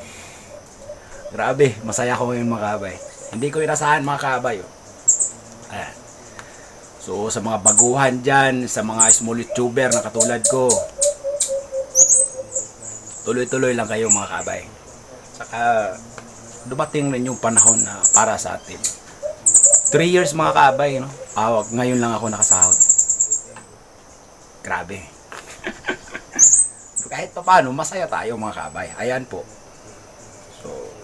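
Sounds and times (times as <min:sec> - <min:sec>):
small animal chirping: 0:00.0 - 0:04.3, 0:04.9 - 0:05.7, 0:07.6 - 0:14.6, 0:16.8 - 0:23.7, 0:26.3 - 0:27.1.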